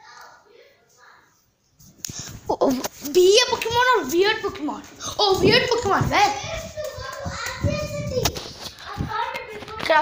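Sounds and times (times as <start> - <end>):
children's voices: 0.0 - 10.0.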